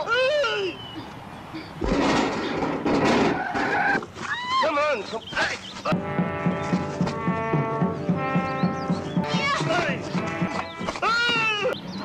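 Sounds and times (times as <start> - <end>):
film music with pulsing beat: 5.9 - 10.9.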